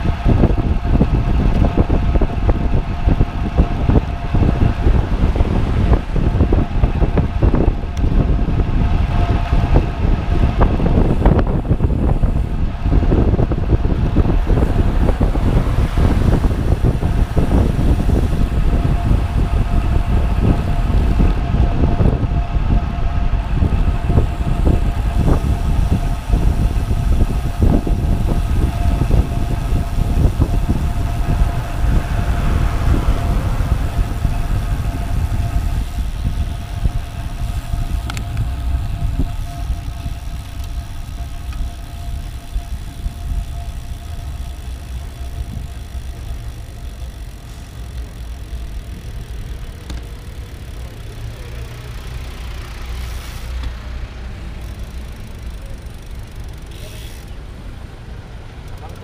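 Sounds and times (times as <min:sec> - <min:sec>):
wind rushing over microphone: 0:00.0 - 0:58.6
tyre road rumble: 0:00.0 - 0:59.0.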